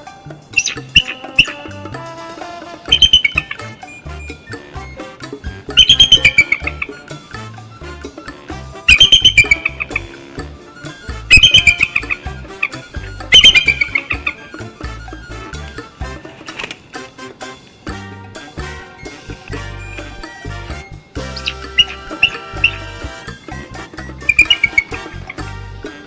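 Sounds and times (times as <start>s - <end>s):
background music: 0.0s - 26.0s
eagles chattering calls: 0.0s - 26.0s.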